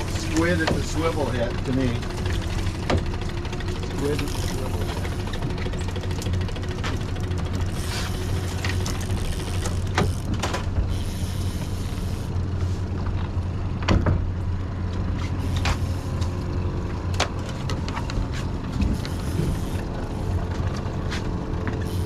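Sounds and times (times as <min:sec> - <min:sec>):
outboard motor droning: 0:00.0 - 0:22.0.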